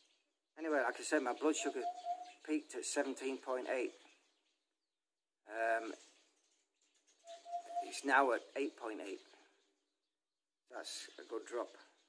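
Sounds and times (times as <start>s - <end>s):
bird single-pitched note: 1.6s - 2.4s, 7.3s - 7.9s.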